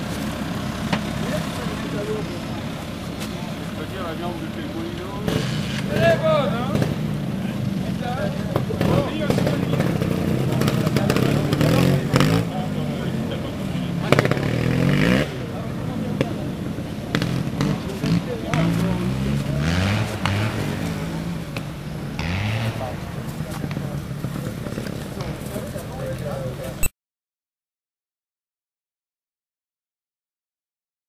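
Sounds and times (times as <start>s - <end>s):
motorcycle engines revving: 0.0s - 26.8s.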